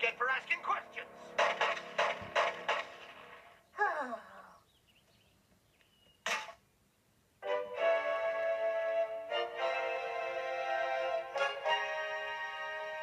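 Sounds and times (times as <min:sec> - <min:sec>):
cassette tape garbled playback: 0:00.0 - 0:03.5.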